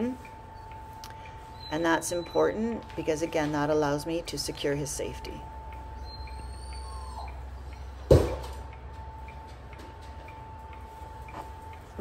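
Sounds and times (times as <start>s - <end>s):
faint regular ticking: 0.0s - 8.0s, 8.6s - 12.0s
steady high hum: 0.0s - 12.0s.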